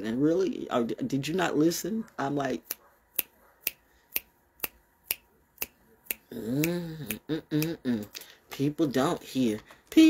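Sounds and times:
fingers snapping: 2.6s - 8.3s.

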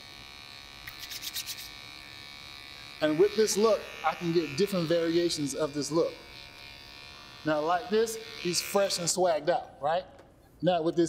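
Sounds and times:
electric hair clipper buzzing: 0.0s - 9.4s
fingertips rubbing through hair: 0.9s - 1.8s.

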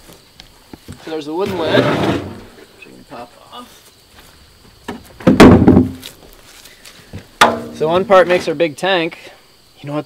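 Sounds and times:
heavy wooden clunk: 4.9s - 6.1s, 7.4s - 8.5s
wooden lid knocking: 7.4s - 7.8s.

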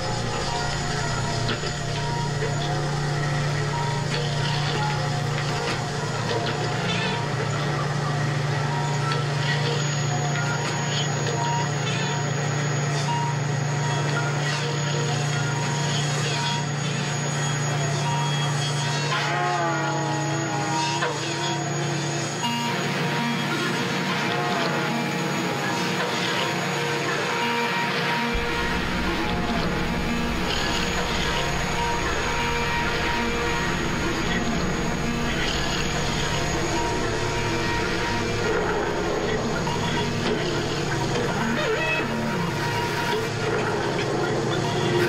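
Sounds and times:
low motor hum: 0.0s - 18.5s, 27.8s - 45.0s
machinery clicks and clanks: 0.0s - 45.0s
faint held tones: 28.3s - 43.0s.

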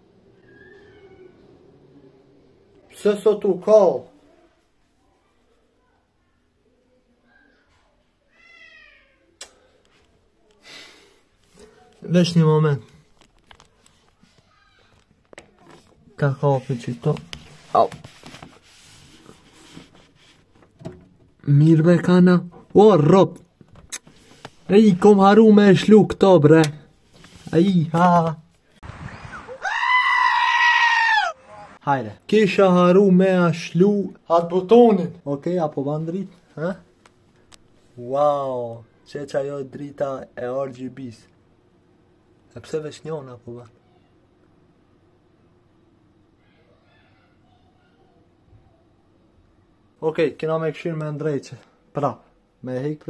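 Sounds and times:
cat meowing: 8.3s - 9.3s.

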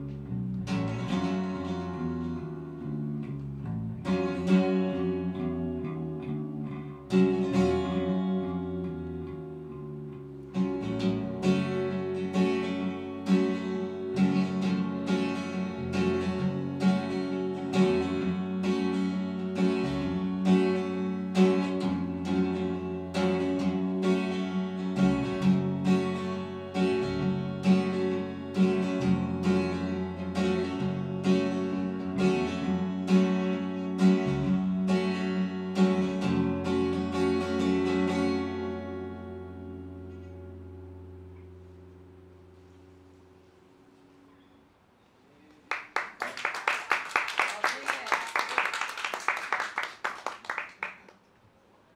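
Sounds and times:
electric bass line: 0.0s - 44.2s
acoustic guitar strumming: 0.0s - 44.5s.

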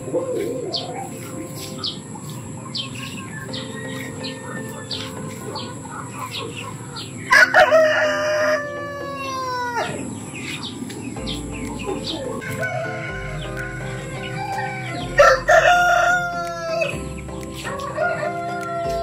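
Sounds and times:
birds chirping: 0.0s - 19.0s
rooster crowing: 3.3s - 5.7s, 7.3s - 10.2s, 12.3s - 16.9s, 17.7s - 19.0s.

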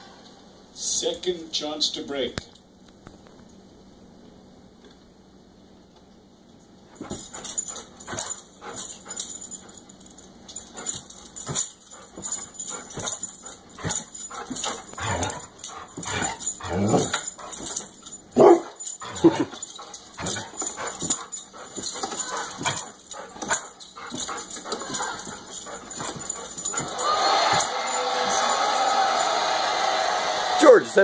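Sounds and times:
dog whining and yipping: 7.0s - 9.3s, 10.8s - 27.7s.

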